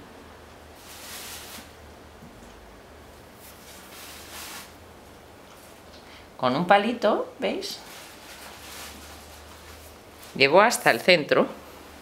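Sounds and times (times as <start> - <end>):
faint room hiss: 0.0 - 12.0
soft rustle: 0.8 - 1.8, 3.2 - 4.8, 7.7 - 10.6.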